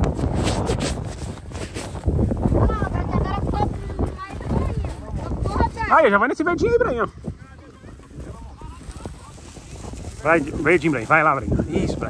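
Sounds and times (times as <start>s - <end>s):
wind rumble on microphone: 0.0s - 12.0s
people talking in background: 2.5s - 12.0s.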